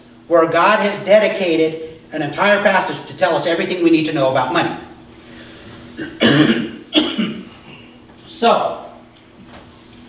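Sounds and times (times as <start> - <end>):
man coughing: 6.0 - 8.0.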